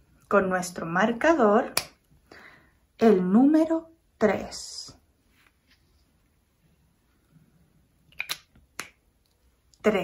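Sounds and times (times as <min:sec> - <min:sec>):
woman speaking: 0:00.3 - 0:01.8, 0:03.0 - 0:05.1, 0:09.8 - 0:10.0
marker cap clicking shut: 0:08.1 - 0:09.0.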